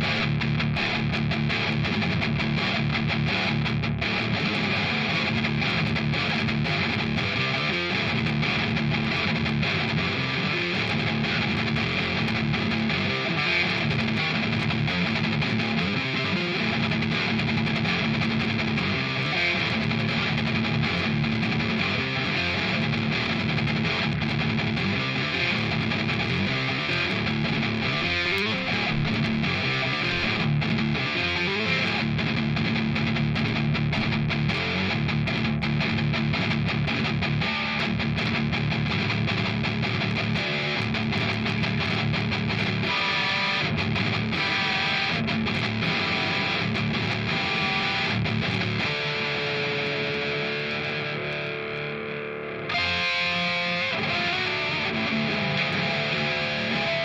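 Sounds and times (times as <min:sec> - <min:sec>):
electric guitar fast picking: 0:00.0 - 0:57.0.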